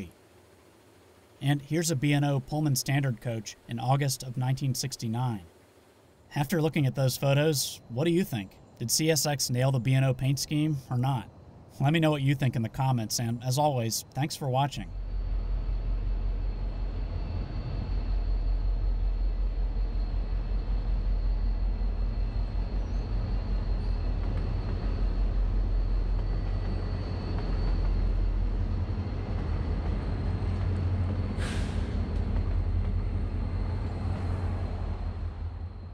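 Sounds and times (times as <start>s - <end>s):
diesel locomotive engine rumble: 0.0s - 35.9s
brief hiss: 31.4s - 32.0s.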